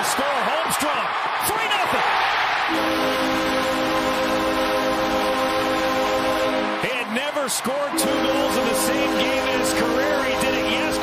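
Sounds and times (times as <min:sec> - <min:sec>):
crowd cheering: 0:00.0 - 0:11.0
goal horn blast: 0:02.6 - 0:11.0.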